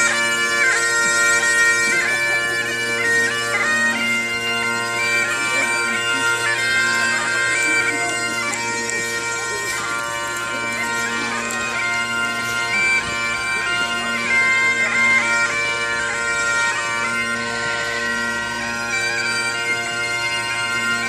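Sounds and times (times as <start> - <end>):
bagpipes playing a tune: 0.0 - 21.0.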